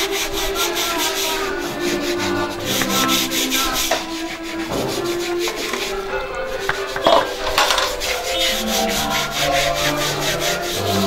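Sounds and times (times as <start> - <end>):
scrub brush scrubbing wet steps: 0.0 - 11.0.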